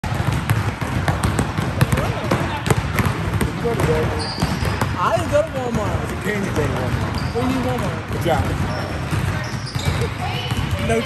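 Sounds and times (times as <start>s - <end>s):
basketballs bouncing on gym floor: 0.0s - 11.0s.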